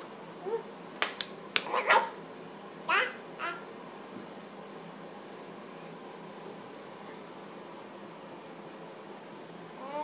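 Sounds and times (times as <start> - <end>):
toddler vocal sounds: 9.8 - 10.0.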